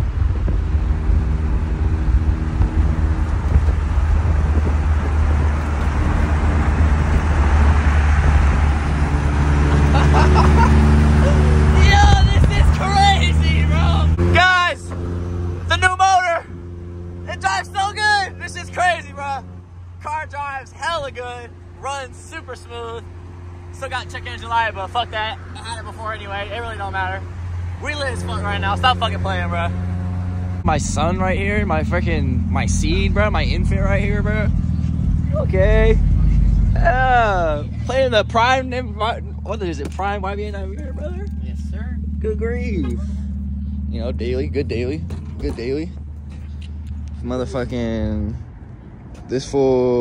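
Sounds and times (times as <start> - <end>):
car engine humming: 0.0 - 50.0
road and wind noise: 0.0 - 50.0
voices calling out: 8.9 - 50.0.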